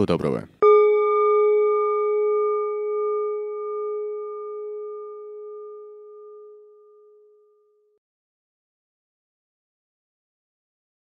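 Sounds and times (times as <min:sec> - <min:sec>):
struck bell ringing: 0:00.6 - 0:07.6.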